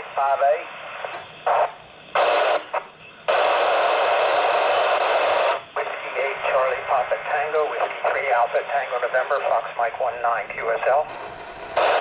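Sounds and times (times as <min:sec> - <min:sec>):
weak voice over radio: 0:00.0 - 0:00.8, 0:05.8 - 0:11.2
radio static hiss: 0:00.0 - 0:12.0.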